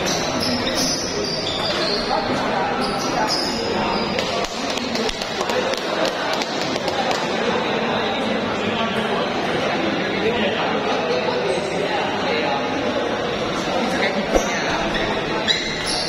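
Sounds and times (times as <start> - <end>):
background voices in a hall: 0.0 - 16.0.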